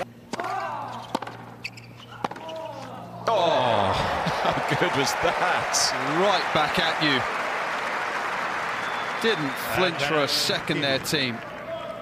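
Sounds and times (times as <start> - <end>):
racket striking tennis ball: 0.3 - 1.5, 2.2 - 2.6.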